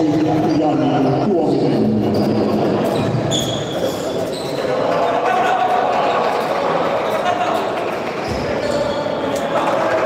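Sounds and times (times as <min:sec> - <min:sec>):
shoe squeaks: 0:02.0 - 0:04.7, 0:08.2 - 0:09.5.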